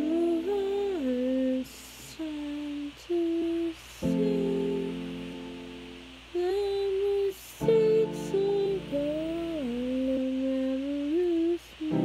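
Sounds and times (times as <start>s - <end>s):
woman singing a long note: 0.0s - 5.7s, 6.3s - 12.0s.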